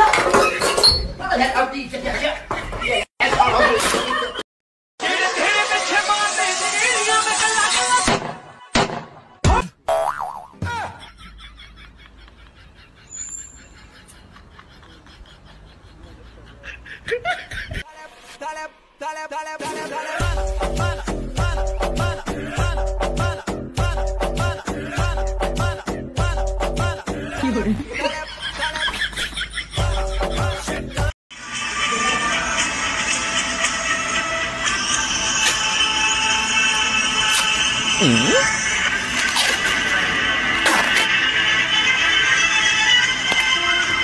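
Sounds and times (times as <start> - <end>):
music: 5.0 - 9.4, 17.9 - 27.7, 29.8 - 44.0
cartoon thud: 8.1 - 9.8
wobbling boing: 9.9 - 10.6.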